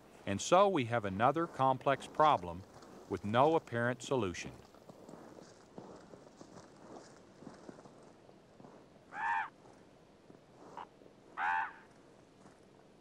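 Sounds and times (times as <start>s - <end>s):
low background noise: 0.0s - 13.0s
animal calls: 9.1s - 9.6s, 10.8s - 11.9s.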